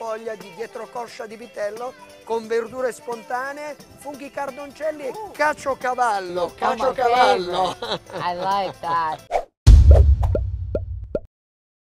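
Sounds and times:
deep bass hit: 0:09.7 - 0:11.3.

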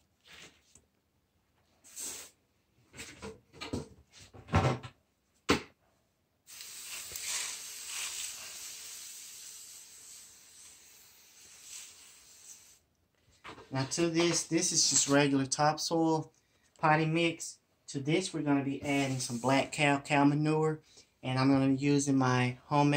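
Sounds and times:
steady hiss of wetting soil: 0:06.4 - 0:12.9.

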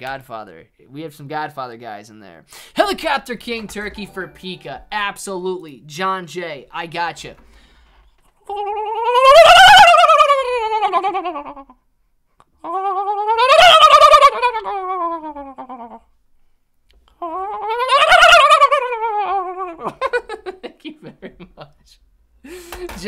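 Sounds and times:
man imitating turkey calls: 0:12.6 - 0:16.0, 0:17.2 - 0:20.0.

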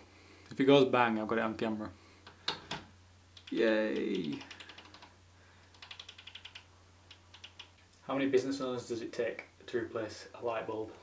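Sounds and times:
faint rapid clicking: 0:03.4 - 0:08.0.

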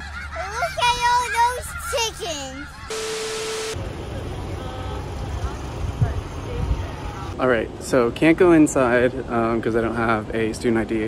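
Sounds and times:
static hiss: 0:02.9 - 0:03.8
steady beep tone: 0:02.9 - 0:03.8
low traffic rumble: 0:03.7 - 0:11.0.

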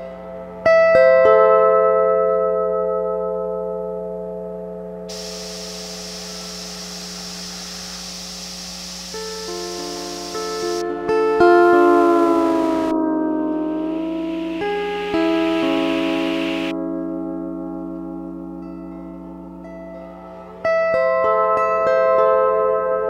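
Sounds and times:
hiss: 0:05.1 - 0:12.9, 0:13.7 - 0:16.7
low mains hum: 0:05.1 - 0:16.7
lap steel guitar chords: 0:05.1 - 0:18.6.

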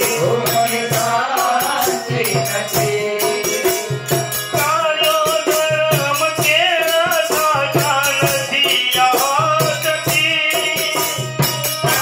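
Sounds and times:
hand percussion beat: 0:00.0 - 0:12.0.

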